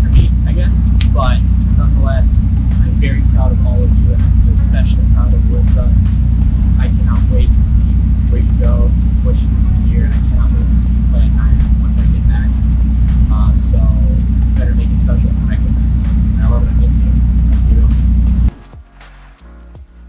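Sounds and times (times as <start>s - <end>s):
man speaking: 0.0s - 18.5s
loud steady low rumble: 0.0s - 18.6s
soft music: 0.0s - 20.0s.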